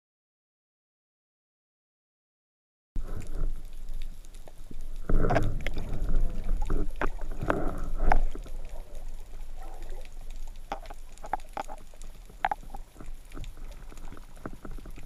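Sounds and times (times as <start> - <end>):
water rushing underwater: 3.0 - 15.0.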